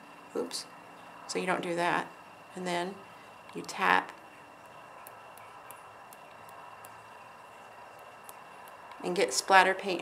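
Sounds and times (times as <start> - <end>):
brush tapping light ticks: 4.6 - 7.0, 7.9 - 9.0.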